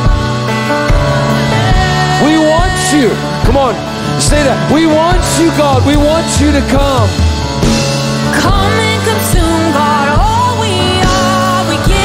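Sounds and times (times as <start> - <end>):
keyboard chords: 0.0 - 12.0
person singing: 1.2 - 3.4, 8.3 - 12.0.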